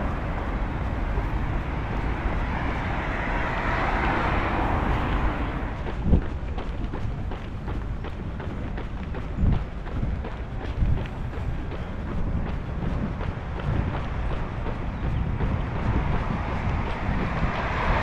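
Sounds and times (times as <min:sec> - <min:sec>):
car passing: 0:00.0 - 0:18.0
running footsteps on pavement: 0:00.0 - 0:18.0
wind rumble on microphone: 0:00.0 - 0:18.0.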